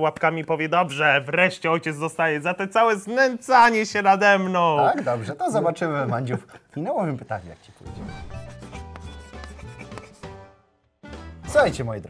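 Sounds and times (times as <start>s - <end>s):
chalk scratching on blackboard: 8.7s - 10.4s.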